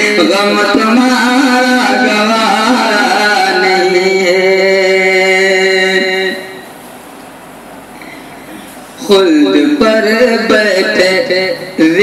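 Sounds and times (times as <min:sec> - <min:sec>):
recording background hiss: 0:00.0 - 0:12.0.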